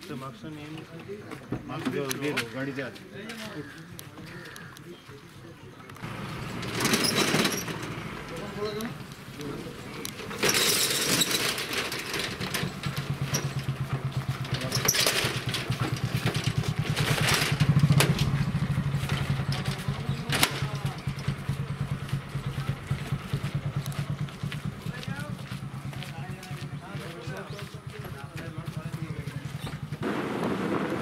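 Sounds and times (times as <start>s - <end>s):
vehicle engine idling: 6.0s - 10.4s, 11.7s - 30.1s.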